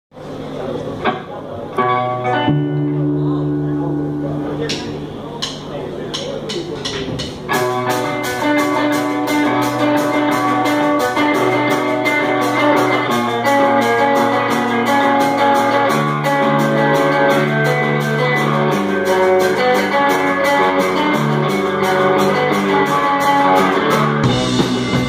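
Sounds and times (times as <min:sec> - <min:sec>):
rock band playing live: 0:00.3 - 0:25.0
drums on cymbals: 0:06.2 - 0:25.0.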